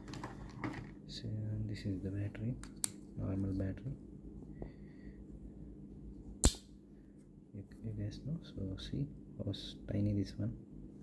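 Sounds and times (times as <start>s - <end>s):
man talking: 1.1s - 2.6s, 3.2s - 4.0s, 7.6s - 10.6s.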